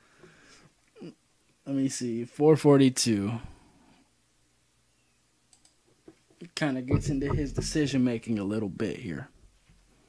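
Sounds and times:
computer mouse clicking: 5.5 - 5.8.

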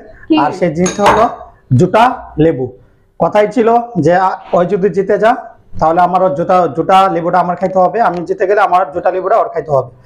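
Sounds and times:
bowl clinking on steel plate: 0.8 - 1.5.

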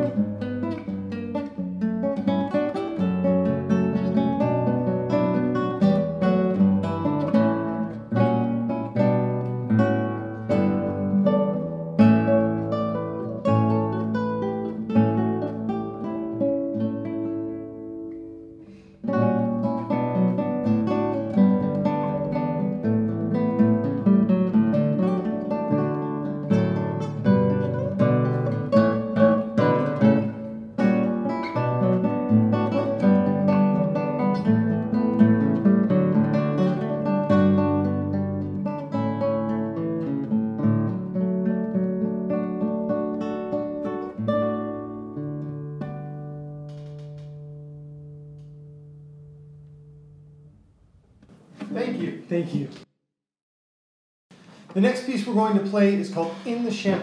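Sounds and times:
classical guitar duet: 0.0 - 52.9, 54.4 - 57.0.

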